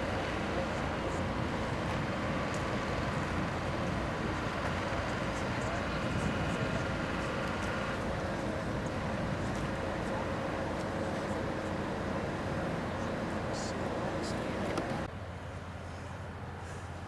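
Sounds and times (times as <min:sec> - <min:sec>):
indistinct voices murmuring: 0:00.0 - 0:15.1
engines and traffic rumble: 0:00.0 - 0:17.0.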